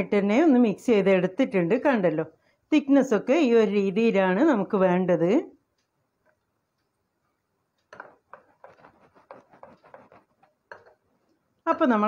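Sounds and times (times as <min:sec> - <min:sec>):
spoon scraping glass bowl: 0:07.9 - 0:11.3.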